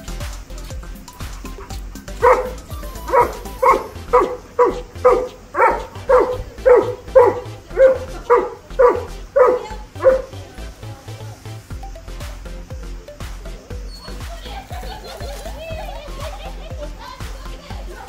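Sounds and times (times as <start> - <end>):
dog barking: 2.2 - 10.4.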